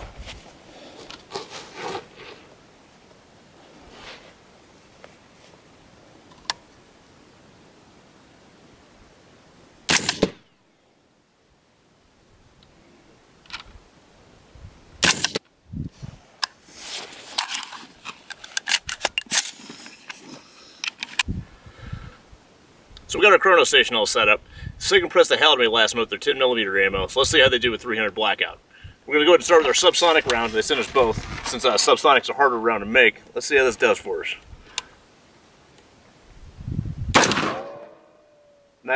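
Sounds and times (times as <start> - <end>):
suppressed rifle shots: 9.9 - 10.5, 15.0 - 15.4, 37.1 - 38.3.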